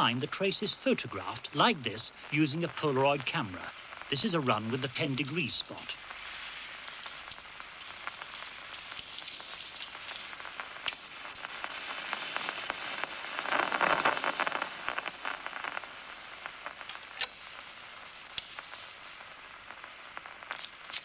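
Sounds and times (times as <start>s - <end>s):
crackle of neural spikes: 0.0s - 21.0s.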